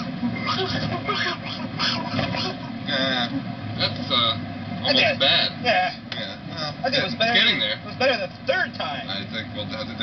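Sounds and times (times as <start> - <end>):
men laughing: 0.3 - 3.4.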